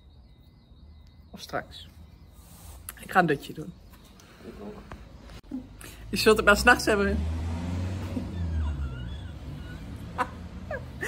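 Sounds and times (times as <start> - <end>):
faint high chirps: 0.0 - 5.6
passing vehicle rumble: 5.6 - 11.0.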